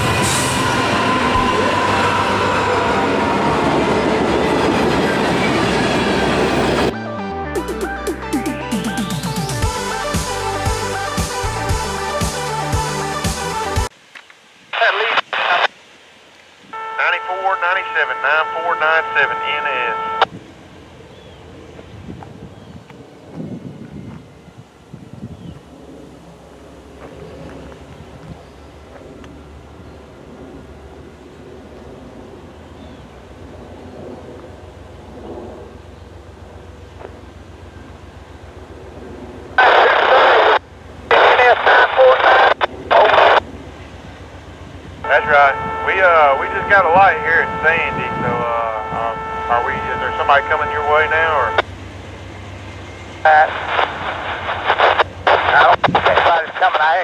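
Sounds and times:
wind: 0.0 - 57.0
steady multi-tone chord: 5.8 - 13.9, 45.0 - 51.6
voice over radio: 14.7 - 15.7, 17.0 - 20.3, 39.6 - 43.4, 45.1 - 51.7, 53.2 - 57.0
radio transmission bursts: 14.7 - 15.8, 16.8 - 20.3, 39.6 - 43.4, 45.1 - 51.7, 53.3 - 57.0.

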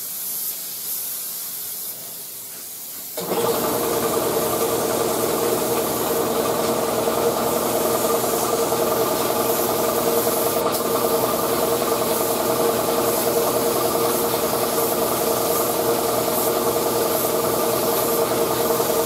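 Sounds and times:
spray gun air hiss: 0.0 - 19.0
air compressor running: 3.2 - 19.0.

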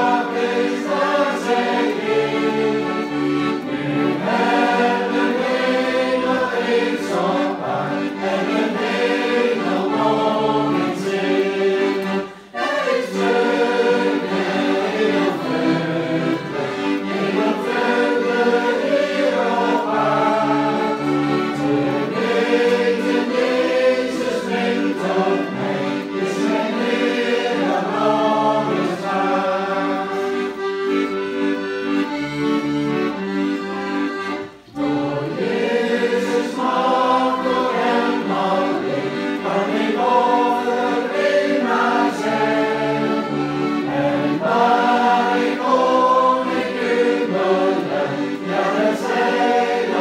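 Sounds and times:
button accordion: 0.0 - 50.0
group singing a hymn: 0.0 - 50.0.

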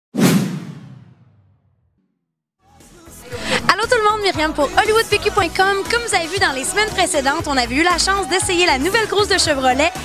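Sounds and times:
whoosh sound effect: 0.2 - 1.7.

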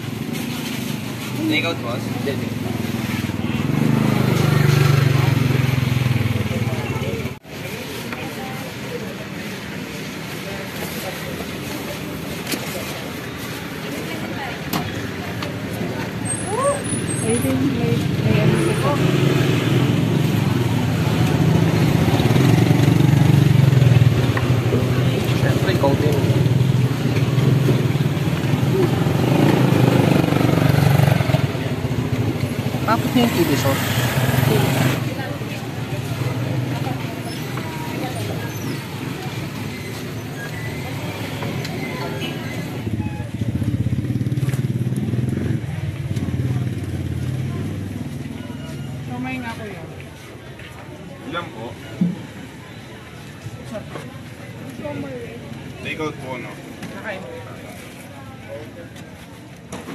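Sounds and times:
people talking: 3.4 - 44.5.

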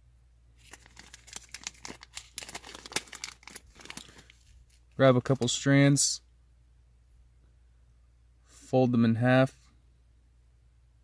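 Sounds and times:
plastic tinsel crinkling: 0.6 - 5.4.

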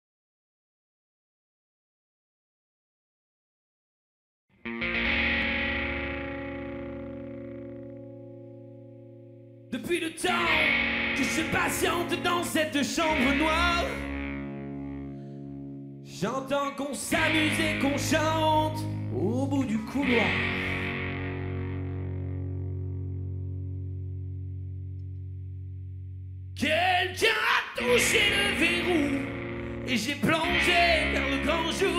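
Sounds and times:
distorted electric guitar chord: 4.6 - 16.2, 17.1 - 26.6, 27.8 - 31.9.

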